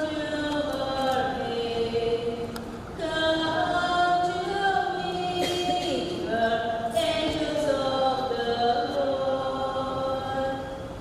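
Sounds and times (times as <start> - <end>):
slow sung hymn or chant: 0.0 - 11.0.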